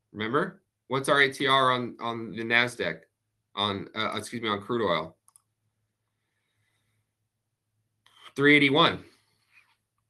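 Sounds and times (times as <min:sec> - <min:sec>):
person speaking: 0:00.2 - 0:03.0, 0:03.6 - 0:05.1, 0:08.2 - 0:09.1.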